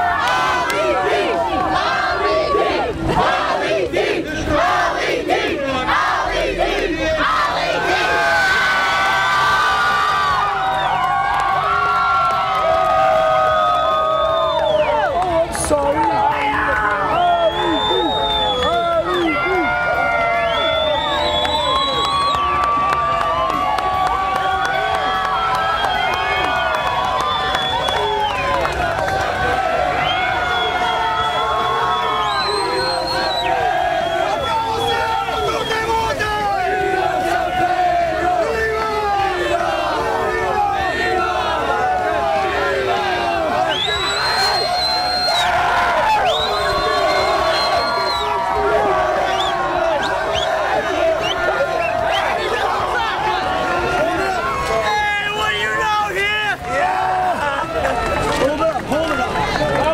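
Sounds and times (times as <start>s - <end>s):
crowd of men cheering and shouting: 0.0s - 59.9s.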